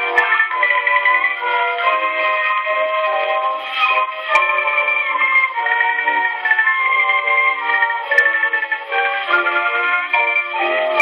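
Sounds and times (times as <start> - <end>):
marimba dance orchestra waltz on phonograph: 0.0 - 11.0.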